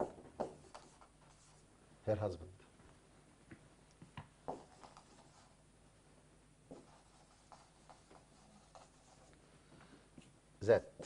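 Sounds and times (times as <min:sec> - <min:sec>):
marker squeaking on whiteboard: 0:06.7 - 0:09.3.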